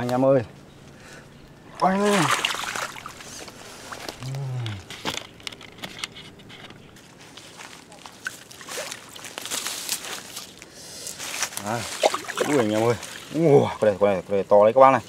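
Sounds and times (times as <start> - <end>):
rustling and crackling plants: 1.8 - 15.0.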